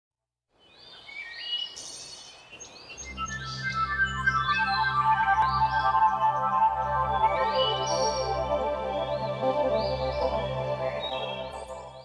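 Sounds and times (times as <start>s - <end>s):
birds chirping and whistling: 1.0s - 12.0s
music with low drone: 3.0s - 12.0s.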